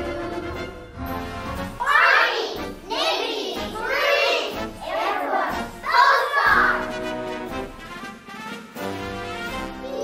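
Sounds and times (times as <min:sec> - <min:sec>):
young children singing: 0:01.8 - 0:06.9.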